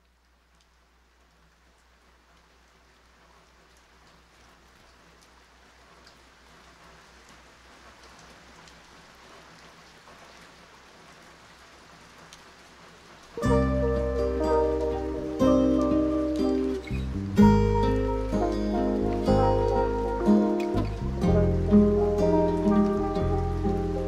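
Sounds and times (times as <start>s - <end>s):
vinyl hiss and crackle: 0.0s - 24.0s
low steady hum: 13.4s - 24.0s.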